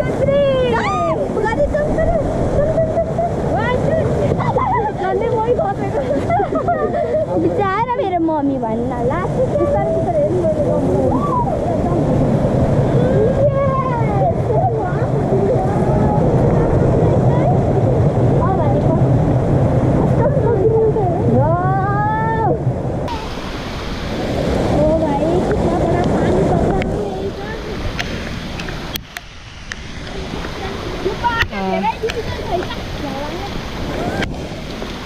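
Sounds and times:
children calling and squealing: 0:00.0 - 0:12.2, 0:12.8 - 0:18.8
rushing water: 0:00.0 - 0:35.0.

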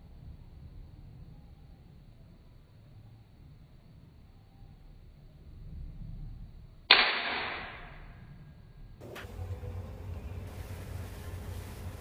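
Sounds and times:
toy pistol shot crack: 0:06.9 - 0:08.0.

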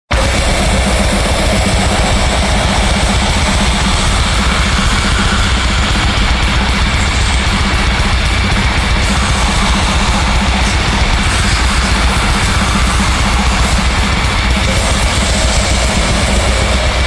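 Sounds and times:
black metal song: 0:00.1 - 0:17.0.

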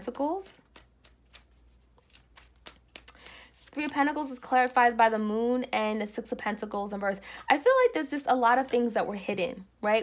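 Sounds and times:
card snaps: 0:00.6 - 0:04.0
cards shuffling: 0:00.6 - 0:04.8.

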